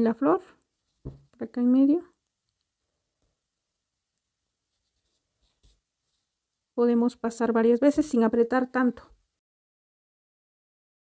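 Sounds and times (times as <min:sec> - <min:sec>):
faint yarn handling sounds: 0:00.3 - 0:06.8.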